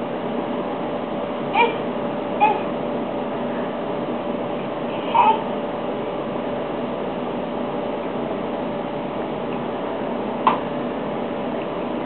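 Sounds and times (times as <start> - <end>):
high-pitched animal call: 1.6 - 2.7.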